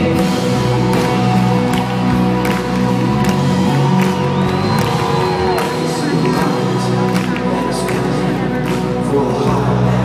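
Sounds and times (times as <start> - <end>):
crowd cheering: 0.0 - 10.0
live band playing: 0.0 - 10.0.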